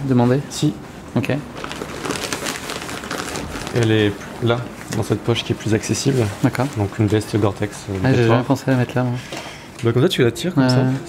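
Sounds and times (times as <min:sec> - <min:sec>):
synthetic fabric crinkling: 0:01.2 - 0:08.1.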